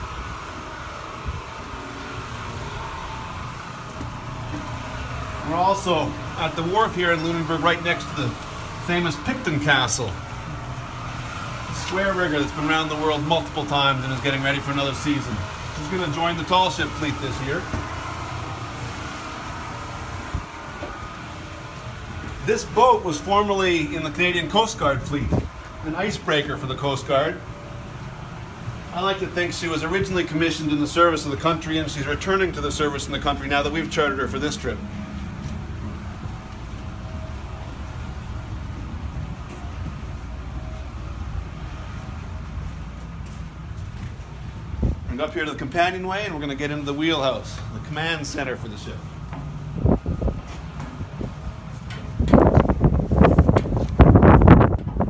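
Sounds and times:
steady mechanical hum: 0.0s - 55.0s
wind rumbling on microphone: 25.2s - 25.8s, 43.8s - 45.2s, 49.7s - 55.0s.

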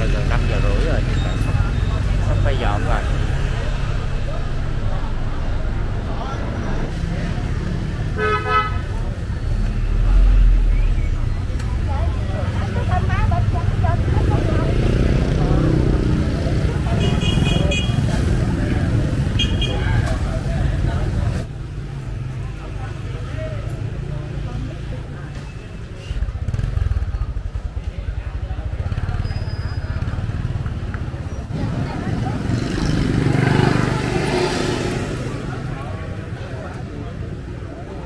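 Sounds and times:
crowd murmur: 0.0s - 38.0s
street traffic: 0.0s - 38.0s
vehicle horn: 8.2s - 8.9s, 16.9s - 18.0s, 19.4s - 19.8s.

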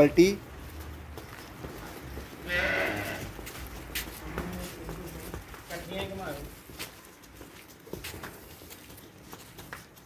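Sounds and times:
cow mooing: 2.5s - 3.3s.

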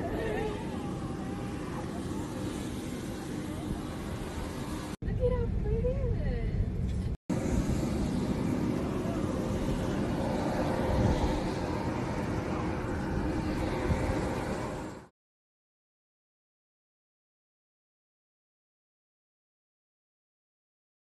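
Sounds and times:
steady low rumble: 0.0s - 15.1s.

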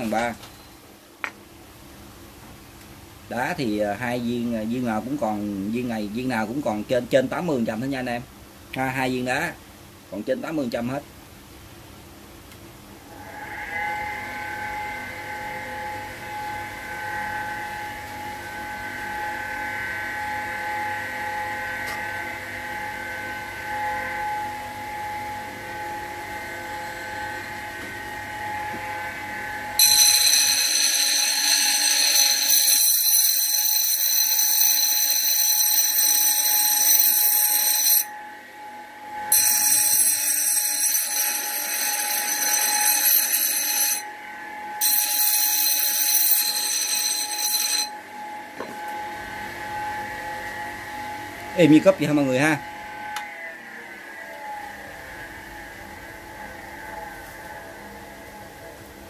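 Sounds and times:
high-pitched grinding screech: 13.1s - 58.4s.

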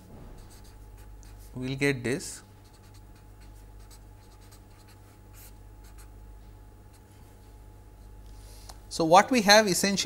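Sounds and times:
faint electrical hum: 0.0s - 10.0s
marker pen scratching on paper: 0.3s - 1.6s, 2.6s - 6.2s, 6.9s - 7.2s.

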